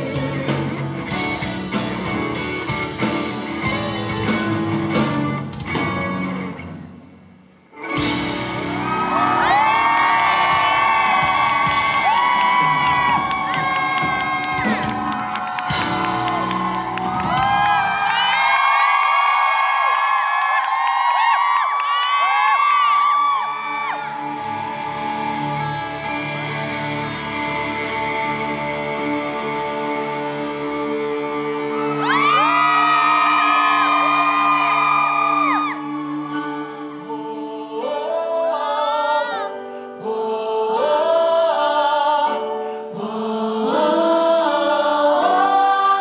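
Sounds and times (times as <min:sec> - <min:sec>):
live band song: 0:00.0 - 0:07.0, 0:07.7 - 0:18.7, 0:23.5 - 0:38.3
crowd cheering with whoops: 0:08.5 - 0:27.0, 0:31.4 - 0:36.6.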